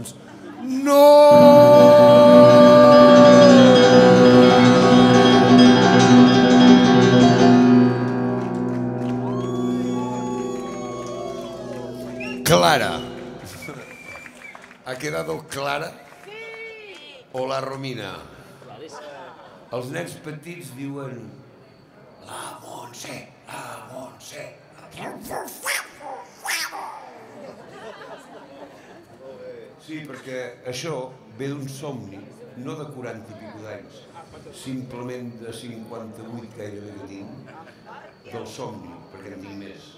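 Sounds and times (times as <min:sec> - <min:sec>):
man shouting: 0:00.6 - 0:05.9
piano chord: 0:00.7 - 0:13.7
soft piano notes sliding up: 0:01.3 - 0:13.6.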